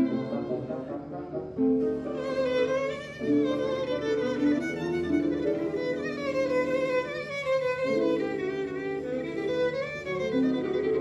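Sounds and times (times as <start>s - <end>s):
cimbalom accompaniment: 0.0s - 11.0s
violin melody with vibrato: 0.0s - 11.0s.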